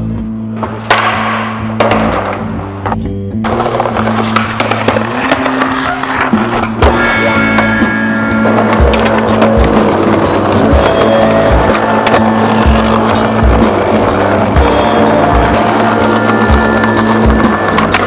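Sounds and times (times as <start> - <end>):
music playing: 0.0 - 18.0
skateboard wheels rolling on pavement: 0.4 - 18.0
skateboard clacks and scrapes on concrete: 0.6 - 18.0.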